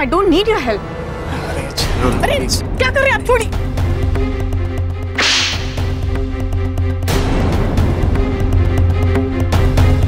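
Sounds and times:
swish sound effect: 0:05.2 - 0:06.0.

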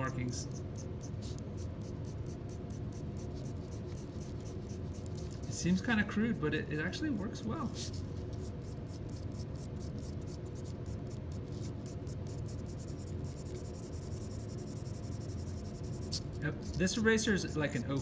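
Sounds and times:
low background hum: 0:00.0 - 0:18.0.

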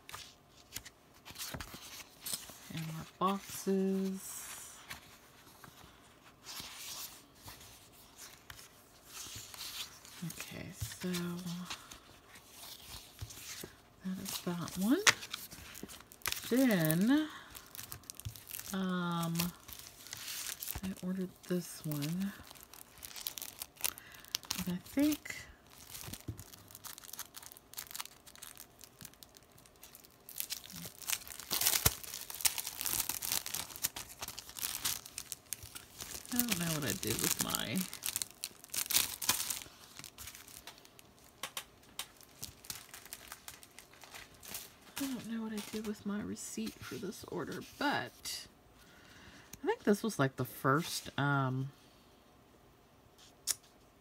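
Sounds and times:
plastic packaging crinkling: 0:06.4 - 0:46.0.

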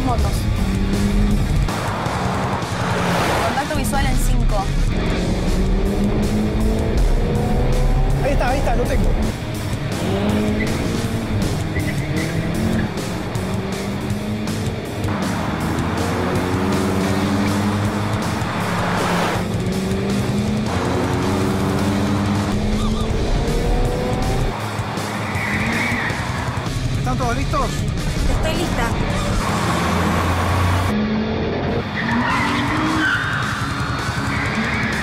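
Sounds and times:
action music with steady beat: 0:00.0 - 0:30.9, 0:32.5 - 0:35.0
car engine revving: 0:00.0 - 0:35.0
car rushing past: 0:00.6 - 0:27.0
tyre squeal: 0:22.7 - 0:23.2, 0:25.2 - 0:26.4, 0:32.0 - 0:35.0.

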